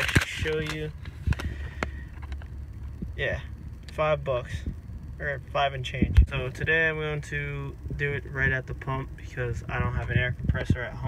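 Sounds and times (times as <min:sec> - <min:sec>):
paper receipt crackling: 0:00.0 - 0:02.5
low rumble inside a car: 0:00.0 - 0:11.0.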